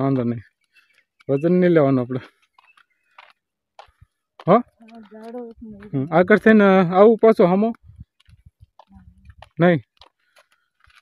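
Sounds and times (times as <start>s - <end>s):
faint clicks and scuffs: 0.1s - 6.0s, 7.7s - 11.0s
person speaking: 4.4s - 8.0s.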